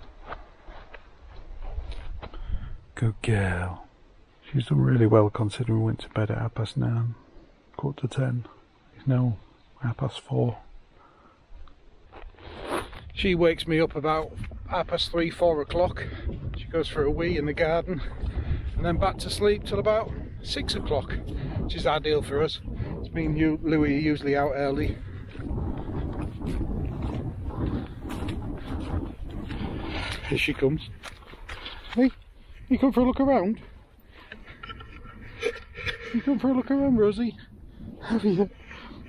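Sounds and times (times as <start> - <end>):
rustling and scraping: 12.1 - 13.2, 34.0 - 36.3
wind buffeting microphone: 12.9 - 39.0
low rumble: 16.3 - 39.0.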